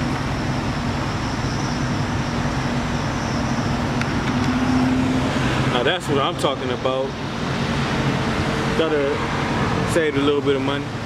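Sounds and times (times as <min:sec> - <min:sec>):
low mechanical hum: 0:00.0 - 0:11.0
vehicle rushing noise: 0:02.8 - 0:10.1.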